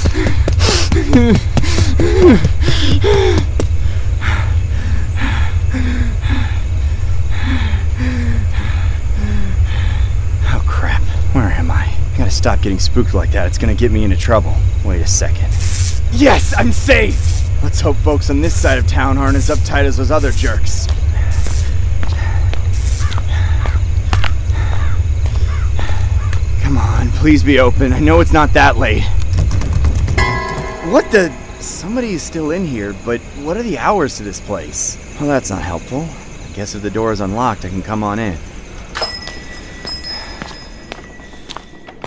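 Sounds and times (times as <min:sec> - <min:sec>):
low rumble: 0:30.0 - 0:33.5
low droning background music: 0:30.2 - 0:42.0
soft footsteps on road: 0:39.0 - 0:42.0.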